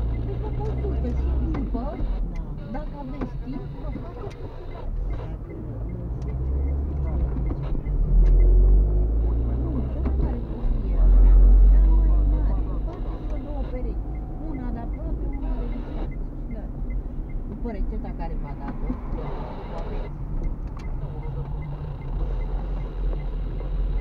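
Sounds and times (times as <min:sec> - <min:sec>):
car driving rumble inside cabin: 0:00.0 - 0:24.0.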